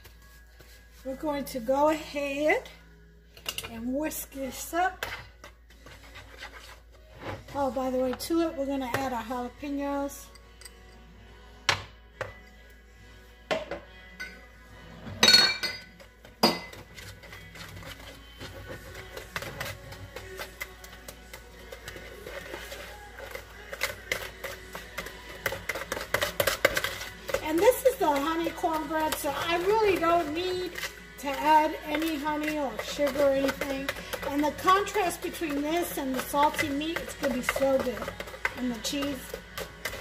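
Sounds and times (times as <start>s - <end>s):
whisk beating batter in bowl: 5.0s - 6.9s, 16.0s - 40.0s
glass jar clinks and knocks: 15.1s - 16.7s.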